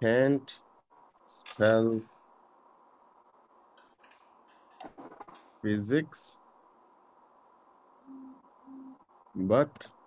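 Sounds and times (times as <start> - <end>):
short low tones: 8.1 - 9.0.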